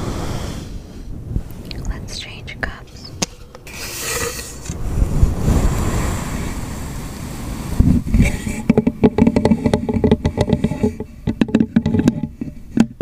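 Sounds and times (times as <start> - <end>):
cup scraping microphone windscreen: 2.7 - 13.0
fingertip tapping on cup: 8.7 - 13.0.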